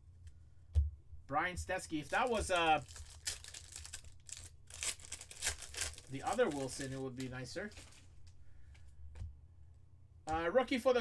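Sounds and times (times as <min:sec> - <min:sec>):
foil pack tearing and crinkling: 0:02.1 - 0:08.1.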